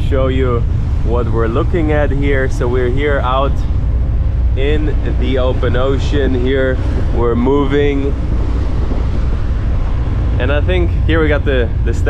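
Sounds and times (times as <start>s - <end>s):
deep low rumble: 0.0s - 12.0s
rush of water wake: 0.0s - 12.0s
wind buffeting microphone: 0.0s - 12.0s.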